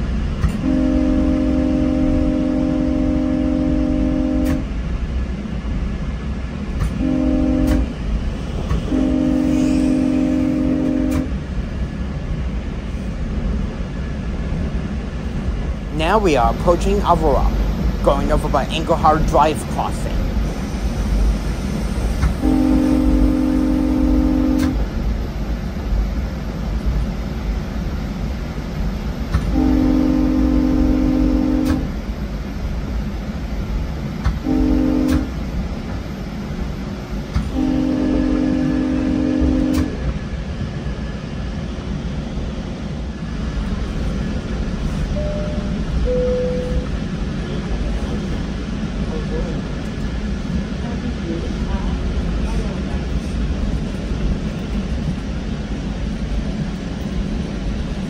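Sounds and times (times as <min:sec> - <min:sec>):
train rumbling on rails: 0:00.0 - 0:58.0
train horn blasts: 0:00.5 - 0:04.8, 0:06.9 - 0:08.0, 0:08.7 - 0:11.4, 0:22.3 - 0:24.9, 0:29.4 - 0:32.0, 0:34.4 - 0:35.4, 0:37.5 - 0:40.0.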